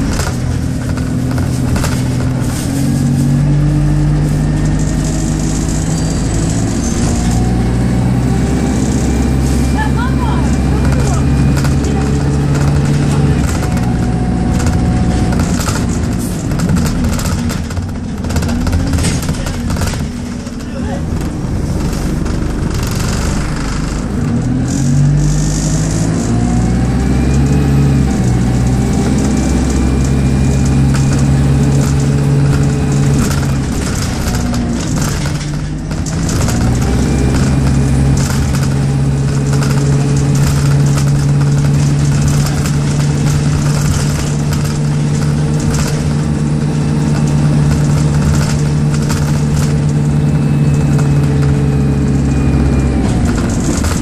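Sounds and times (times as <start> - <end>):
body rattles and knocks: 0.0 - 26.5, 28.0 - 54.0
bus diesel engine: 0.0 - 54.0.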